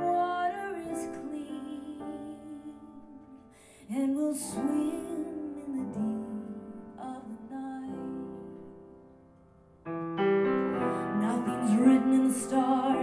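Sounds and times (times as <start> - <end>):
woman singing: 0.0 - 8.8, 10.9 - 13.0
piano chords: 0.0 - 13.0.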